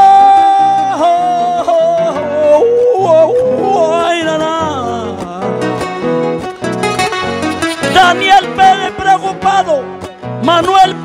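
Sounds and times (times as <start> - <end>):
man singing a wordless wail: 0.0 - 5.8, 7.8 - 11.0
strummed acoustic guitars: 0.0 - 11.0.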